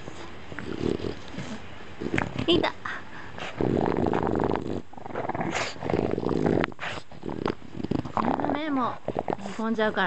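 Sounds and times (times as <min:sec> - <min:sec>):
dog growling: 0:00.5 - 0:09.8.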